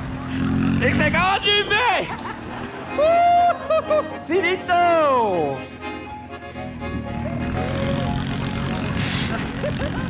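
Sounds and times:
vehicle engine rumble: 0.0s - 4.4s, 5.5s - 10.0s.

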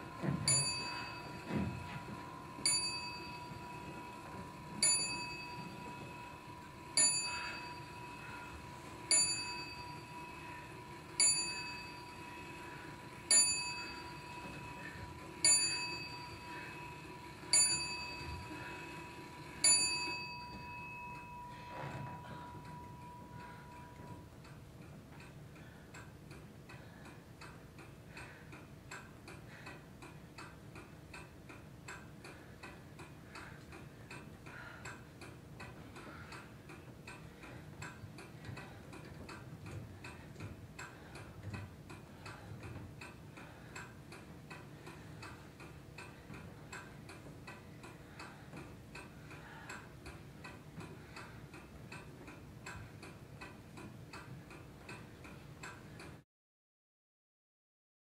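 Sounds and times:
steady quiet ticking: 0.0s - 56.2s.

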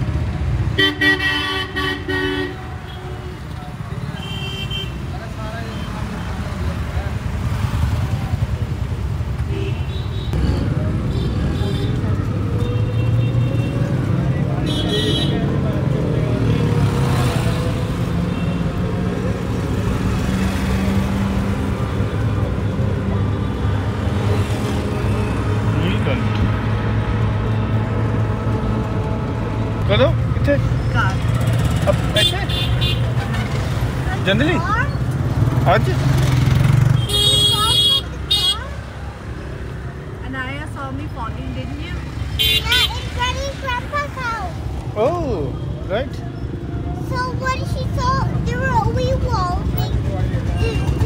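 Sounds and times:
road and motor noise: 0.0s - 51.0s
vehicle horn toots: 37.0s - 38.7s.

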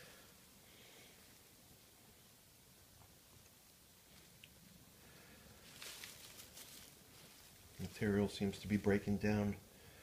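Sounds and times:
dry leaves rustling and crackling: 5.5s - 9.1s.

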